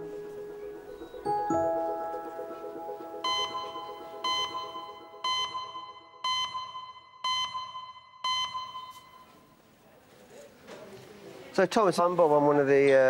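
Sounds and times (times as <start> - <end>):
electronic alarm beeping: 3.2 - 9.5.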